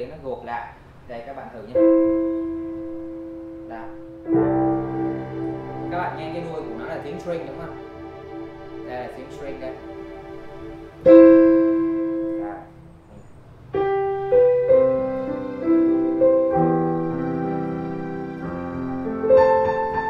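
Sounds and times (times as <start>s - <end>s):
digital piano with strings: 0.0s - 20.0s.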